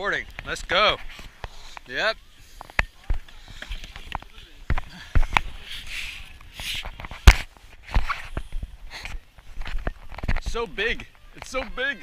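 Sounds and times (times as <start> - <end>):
hissy rustles: 1.0 - 9.8.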